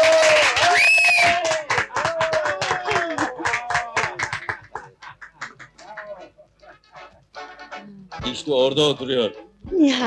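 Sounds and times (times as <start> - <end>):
men clapping: 0.0 - 6.8.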